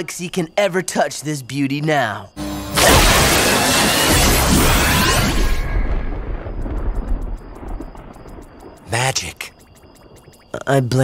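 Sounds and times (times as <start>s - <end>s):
cartoon magic blast: 2.5s - 6.1s.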